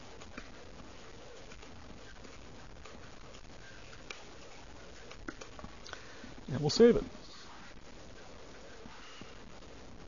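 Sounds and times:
microphone hiss and hum: 0.0 - 10.0.

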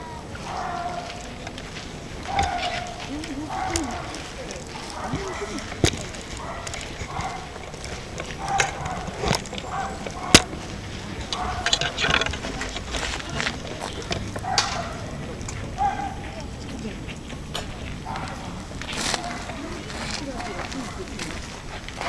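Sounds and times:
chatter of voices: 0.0 - 22.0.

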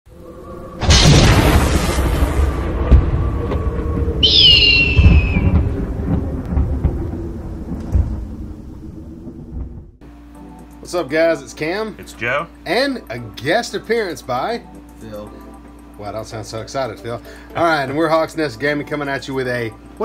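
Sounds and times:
thunder-like boom: 0.8 - 10.0
hawk screech: 4.2 - 5.6.

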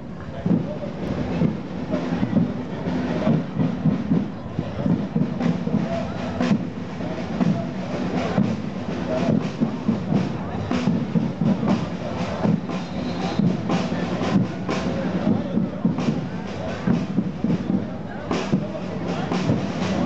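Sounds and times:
crowd voices: 0.0 - 20.0
parade drums playing: 0.1 - 20.0.

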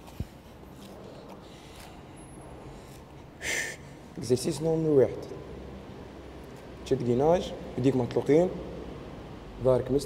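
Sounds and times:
sharp breathy exhale: 2.6 - 4.0.

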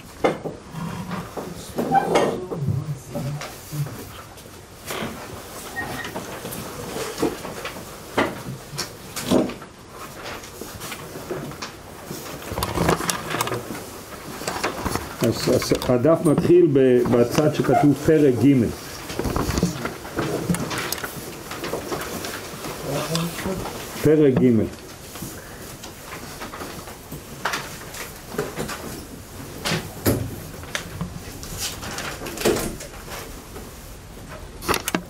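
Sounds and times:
paper sheets knocking and rustling: 6.1 - 22.9, 23.5 - 33.8
small clicks and knocks: 34.6 - 35.0.

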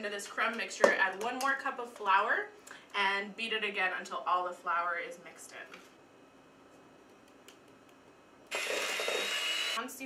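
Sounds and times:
electric hand mixer whining: 8.5 - 9.8.

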